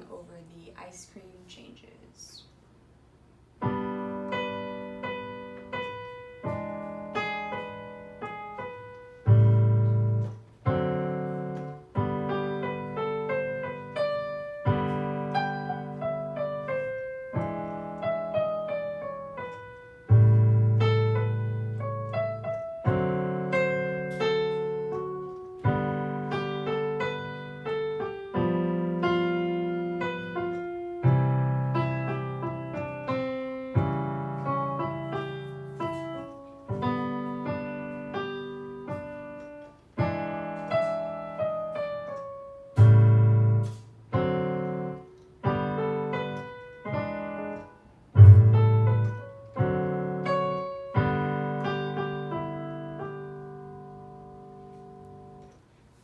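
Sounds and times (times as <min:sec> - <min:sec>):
digital piano playing: 0:03.6 - 0:56.0.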